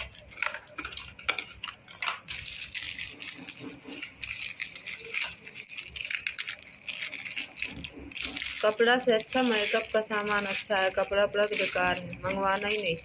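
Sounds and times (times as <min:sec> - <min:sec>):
bangles clinking: 0:00.0 - 0:13.0
plastic packaging clicking and crinkling: 0:00.0 - 0:13.0.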